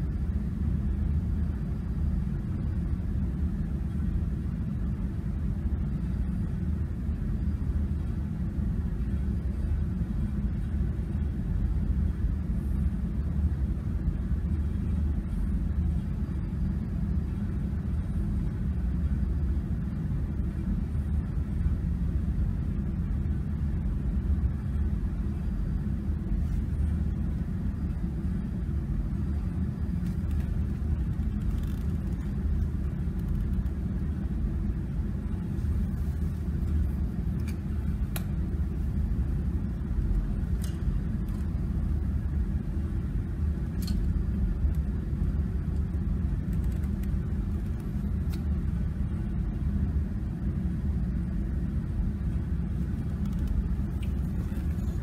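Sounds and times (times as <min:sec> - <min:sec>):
low workshop rumble: 0:00.0 - 0:55.0.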